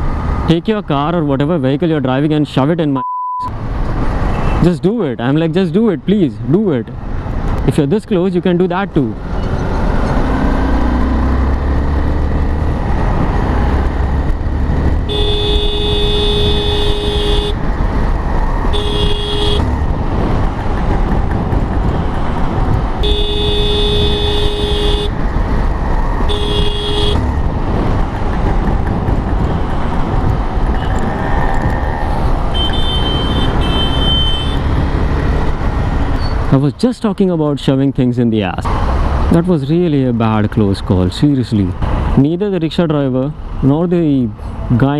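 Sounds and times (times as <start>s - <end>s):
wind and traffic rumble: 0.0s - 44.9s
faint high beeps: 3.0s - 3.5s
vehicle horn honking: 15.1s - 17.6s, 18.7s - 19.7s, 23.0s - 25.2s, 26.3s - 27.2s, 32.5s - 34.7s.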